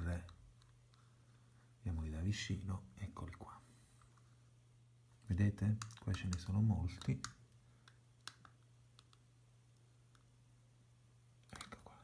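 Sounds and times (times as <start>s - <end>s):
low steady hum: 0.0s - 12.0s
computer mouse clicks: 5.6s - 10.3s.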